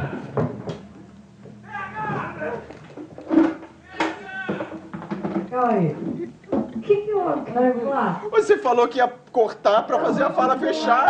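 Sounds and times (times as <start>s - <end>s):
men's voices speaking and exclaiming: 1.6s - 2.8s, 3.7s - 4.9s, 8.0s - 11.0s.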